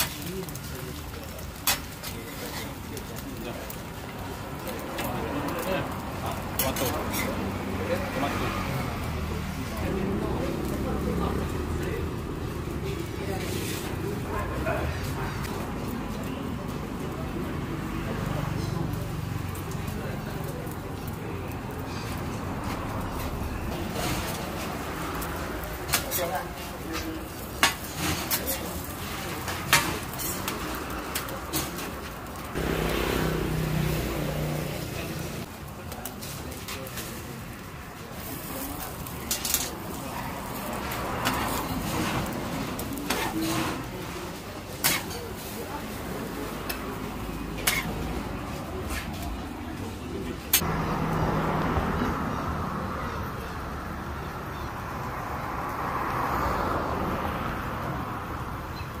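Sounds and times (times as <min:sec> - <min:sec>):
griddle cooking: 0:00.0 - 0:59.0
road traffic: 0:00.0 - 0:59.0.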